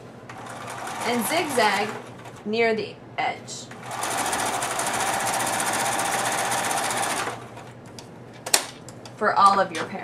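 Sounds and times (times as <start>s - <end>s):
sewing machine stitching: 0.4s - 2.4s, 3.8s - 7.6s.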